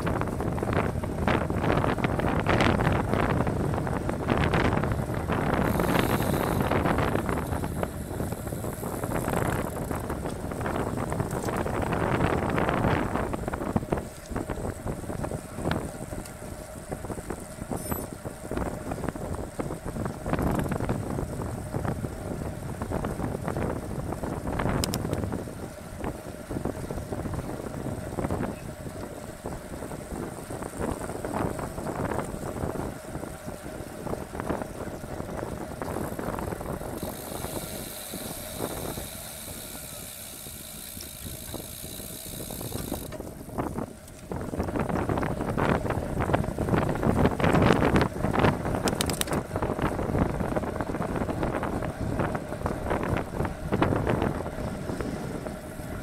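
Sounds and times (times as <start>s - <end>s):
bike tyre noise: 0.0s - 56.0s
wind noise on microphone: 0.0s - 56.0s
high fast buzz: 5.6s - 9.6s, 37.0s - 43.1s.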